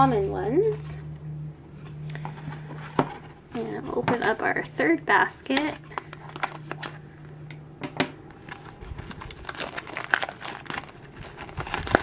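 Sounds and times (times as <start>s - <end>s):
plastic film crinkling: 3.6s - 7.0s, 8.3s - 12.0s.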